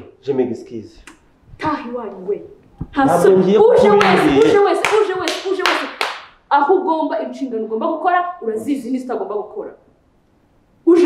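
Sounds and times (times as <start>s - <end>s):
sharp hand claps: 3.9s - 6.4s.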